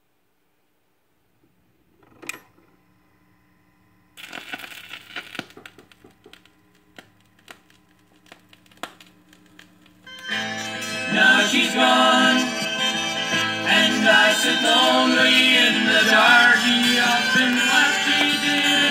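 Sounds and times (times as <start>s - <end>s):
vinyl surface crackle and pops: 4.2s - 10.9s, 14.3s - 18.9s
song music from record: 10.1s - 18.9s.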